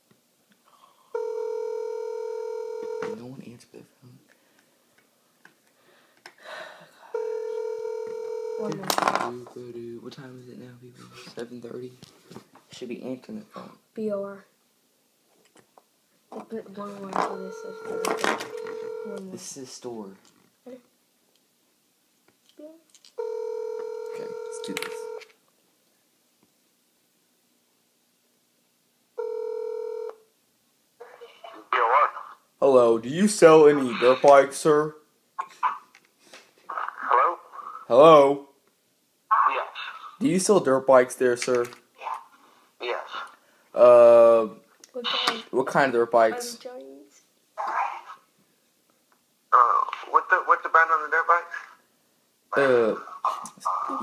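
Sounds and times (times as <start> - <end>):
telephone ringback tone: 1.2 - 3.2, 7.1 - 8.8, 17.1 - 19.3, 23.2 - 25.3, 29.2 - 30.2.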